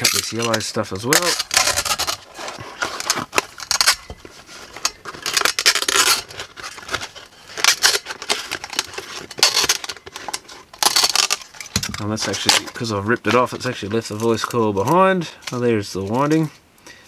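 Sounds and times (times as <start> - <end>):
paper cone tearing: 0.0 - 15.0.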